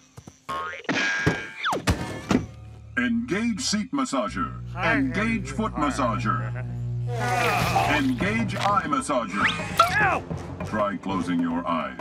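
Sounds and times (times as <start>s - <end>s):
music: 0.0s - 3.8s, 5.5s - 12.0s.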